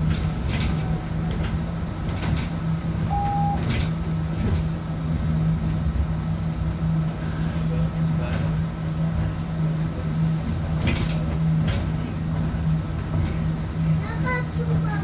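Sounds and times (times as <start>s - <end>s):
bus drivetrain hum: 0.0s - 15.0s
road rumble: 0.0s - 15.0s
short beep: 3.1s - 3.7s.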